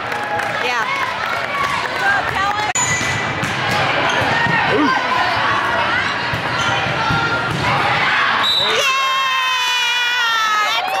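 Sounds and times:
murmur of voices: 0.6 - 8.9.

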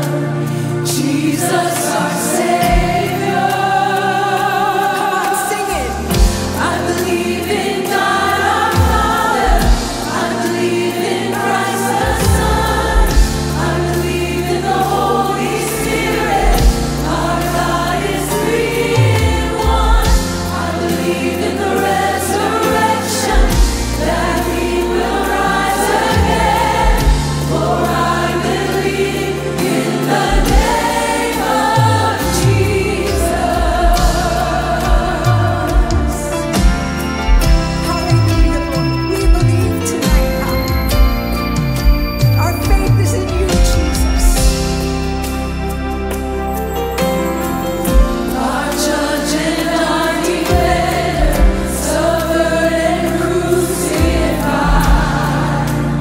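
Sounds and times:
choir singing a hymn: 0.0 - 42.0, 42.9 - 56.0
band accompaniment: 0.0 - 56.0
woman leading singing: 0.9 - 13.1
drum strikes: 6.1 - 6.8, 26.1 - 27.9, 29.7 - 31.0.

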